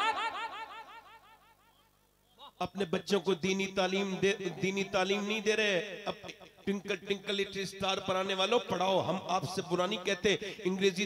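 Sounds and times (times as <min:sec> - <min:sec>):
man speaking over public address echo: 0:02.6 - 0:11.0.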